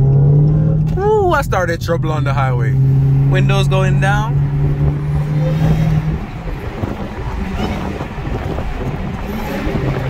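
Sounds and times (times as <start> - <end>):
car engine cruising: 0.0 - 10.0
wind and road noise: 0.0 - 10.0.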